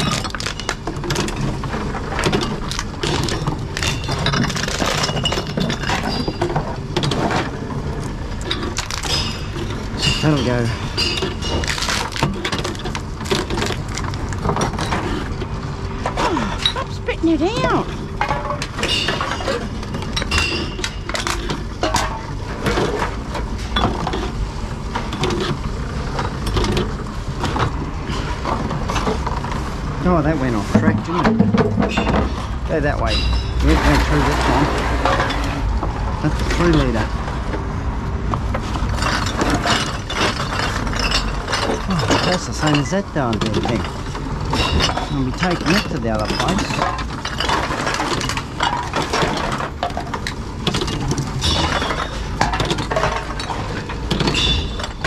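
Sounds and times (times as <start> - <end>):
bottles and cans clinking: 0.0 - 16.9, 17.6 - 24.4, 30.2 - 35.7, 38.8 - 55.0
vending machines running: 0.0 - 55.0.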